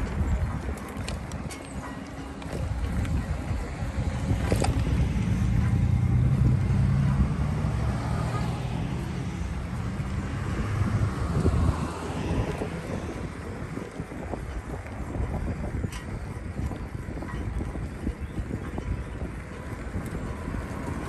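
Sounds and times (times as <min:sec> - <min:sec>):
bicycle tyres on pavement: 0:00.0 - 0:21.0
wind buffeting microphone: 0:00.0 - 0:21.0.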